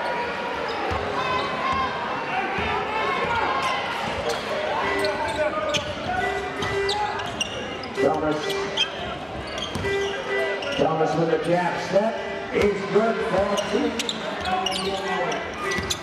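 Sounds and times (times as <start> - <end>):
crowd murmuring: 1.2 - 16.0
shoe squeaks: 4.2 - 11.0, 13.4 - 16.0
basketball bouncing: 9.1 - 10.1.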